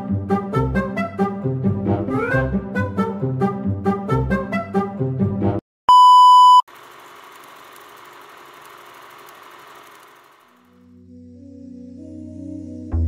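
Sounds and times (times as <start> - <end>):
music: 0.0 - 5.6, 10.8 - 13.0
loud electronic beep: 5.9 - 6.6.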